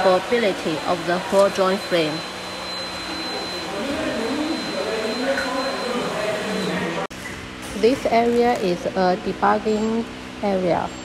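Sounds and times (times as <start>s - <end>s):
indistinct voices: 0.0s - 7.1s
faint high whine: 0.0s - 7.4s.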